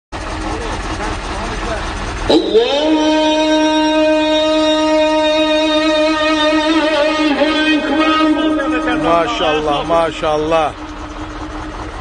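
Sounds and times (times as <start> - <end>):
truck engine idling: 0.1 - 12.0
faint voices: 0.3 - 12.0.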